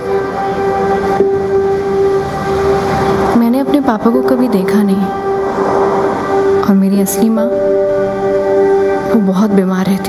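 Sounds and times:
held musical note: 0.0 - 9.6.

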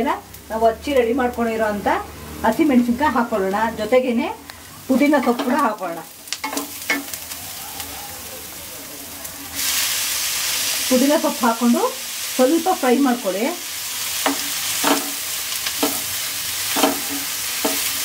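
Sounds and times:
onions sizzling in oil: 0.0 - 18.0
spatula scraping pan: 15.8 - 18.0.

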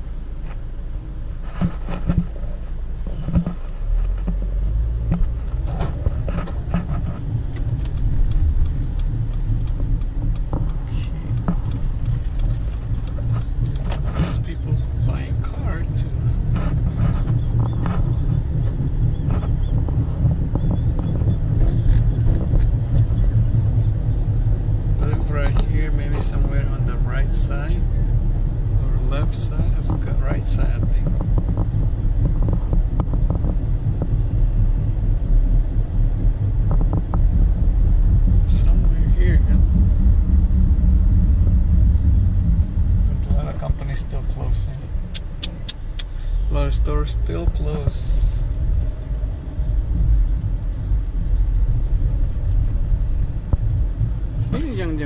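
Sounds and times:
engine and road rumble: 0.0 - 55.0.

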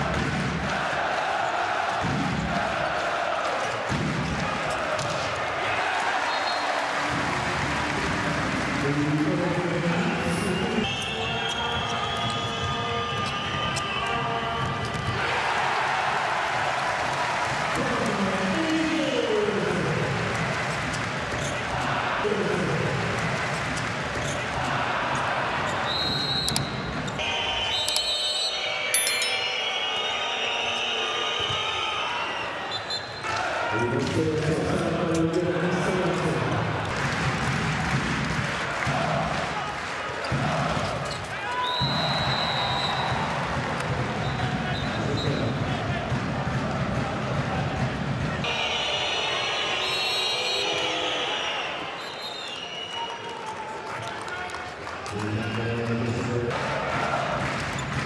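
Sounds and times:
arena crowd din: 0.0 - 58.0.

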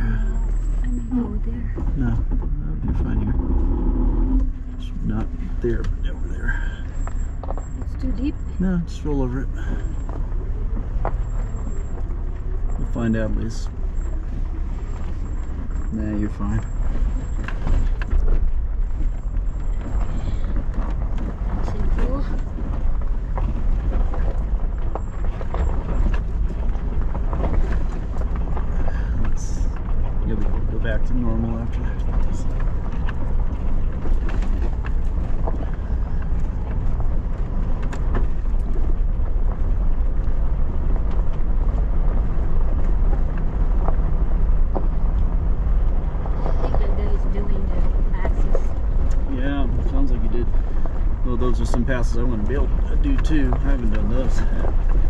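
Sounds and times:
vehicle engine and tyres rumbling: 0.0 - 55.0.

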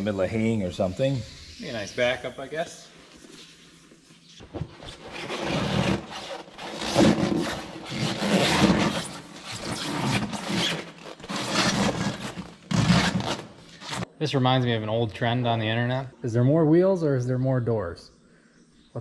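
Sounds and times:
rubber rubbing against rubber: 3.1 - 14.1.

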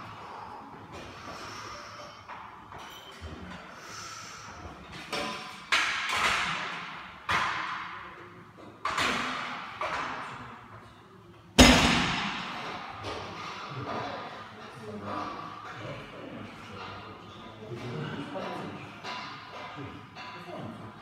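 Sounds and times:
barbell plates thudding on floor: 11.6 - 13.2.

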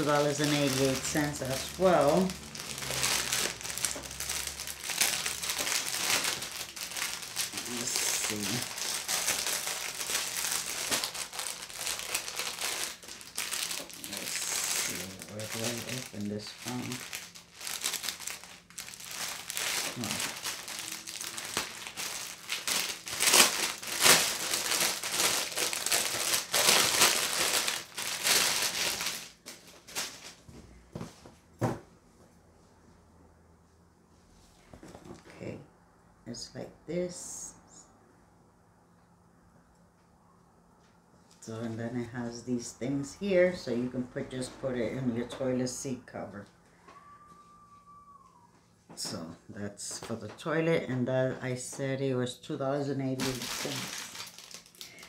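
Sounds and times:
packaging crinkling and rustling: 0.0 - 30.6, 53.2 - 55.0.

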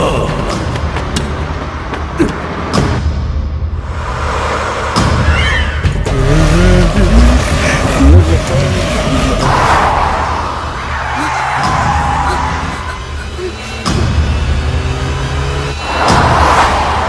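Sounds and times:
action film music: 0.0 - 17.0
vehicle engine at speed: 6.0 - 10.7, 12.4 - 17.0.

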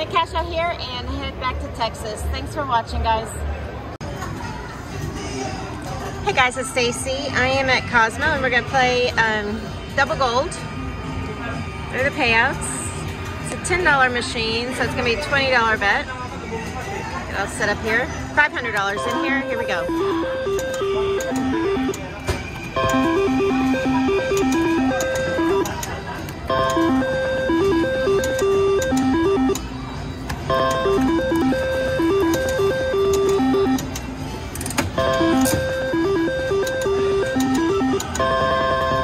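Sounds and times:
slot machine beeping tune: 18.6 - 25.8, 26.4 - 29.8, 30.4 - 34.0, 34.9 - 39.0.

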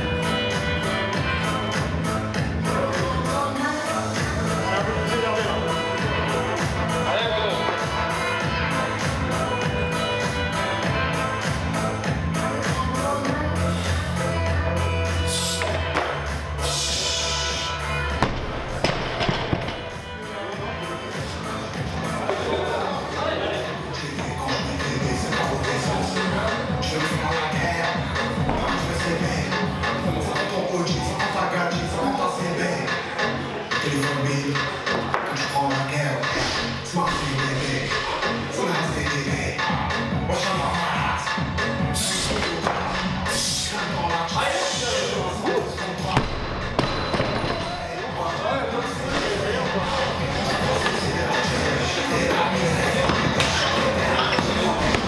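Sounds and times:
background music: 0.0 - 55.0.

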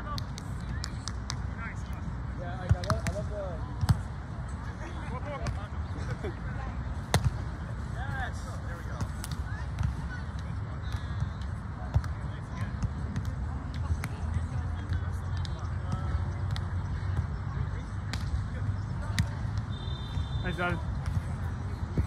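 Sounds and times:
hands slapping volleyball: 2.7 - 3.2.

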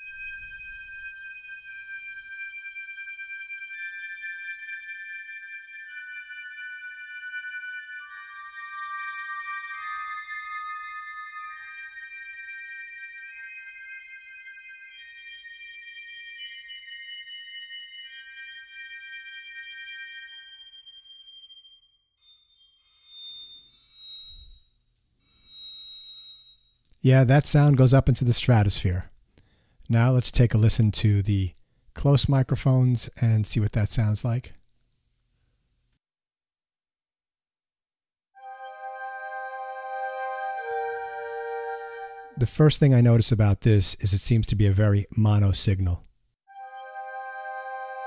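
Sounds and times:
high sustained woodwind notes: 0.0 - 28.6, 38.4 - 43.1, 46.5 - 48.0
short high woodwind notes: 38.4 - 42.6.

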